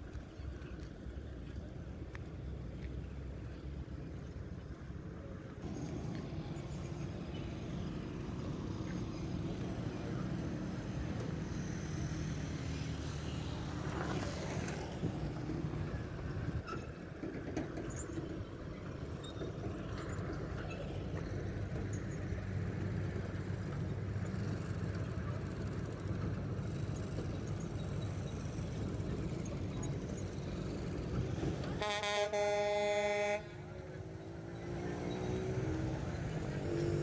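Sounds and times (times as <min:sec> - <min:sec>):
road traffic passing: 0:00.0 - 0:37.0.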